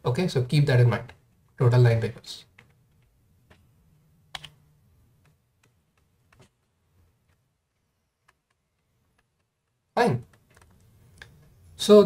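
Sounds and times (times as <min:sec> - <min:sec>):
computer keys clicking: 0:04.3 - 0:04.6.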